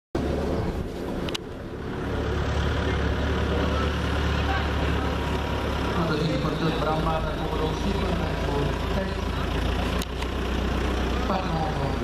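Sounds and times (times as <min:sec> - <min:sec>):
outdoor rumble and hiss: 0:00.2 - 0:12.0.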